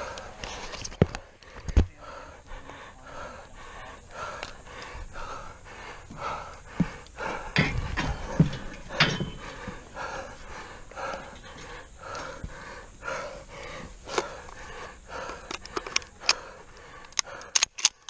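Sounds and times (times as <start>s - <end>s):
man panting: 0.0s - 18.0s
sharp clicks: 14.1s - 18.0s.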